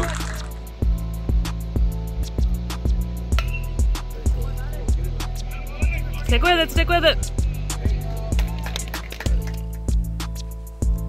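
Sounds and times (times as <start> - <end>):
background music with drum beat: 0.0 - 11.0.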